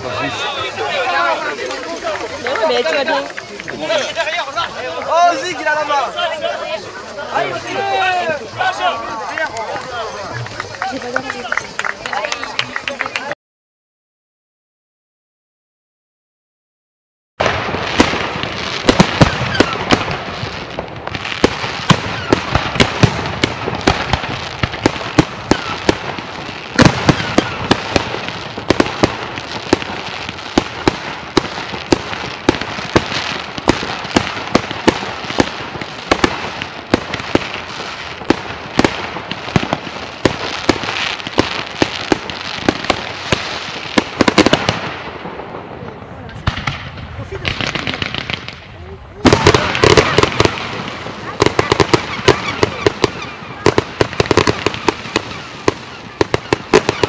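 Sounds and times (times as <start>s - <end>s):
fireworks bursting: 0.0s - 13.3s, 17.4s - 57.0s.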